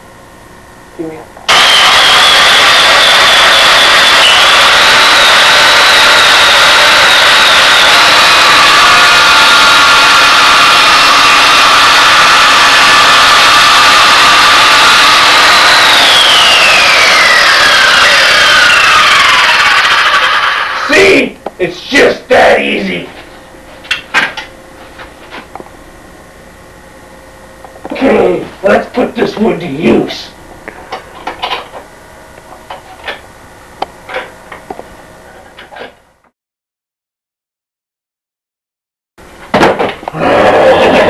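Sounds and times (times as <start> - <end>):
circular saw motor whine: 1.5 - 23.0.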